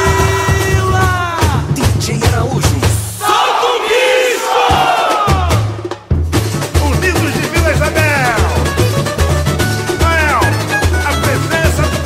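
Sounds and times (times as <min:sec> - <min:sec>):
samba drums and bass: 0:00.0 - 0:03.5, 0:04.6 - 0:12.0
large chorus singing: 0:03.2 - 0:05.7.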